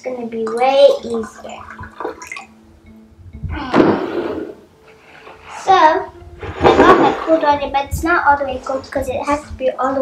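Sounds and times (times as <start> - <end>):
water pouring into a glass: 0.4 - 2.5
water sloshing: 0.4 - 2.6.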